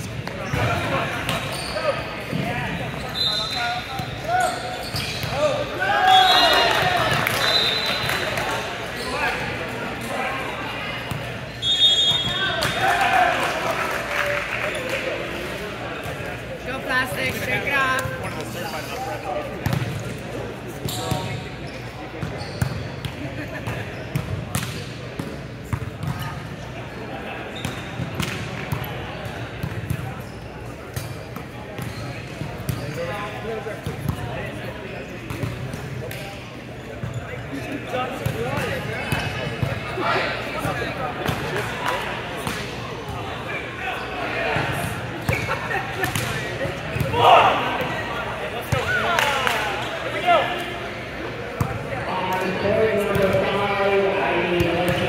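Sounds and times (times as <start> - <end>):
echoing chatter of voices: 0.0 - 55.0.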